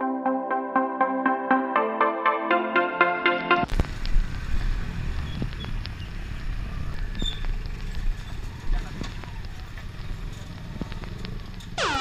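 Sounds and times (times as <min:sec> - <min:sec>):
road rumble on gravel: 0:03.7 - 0:11.8.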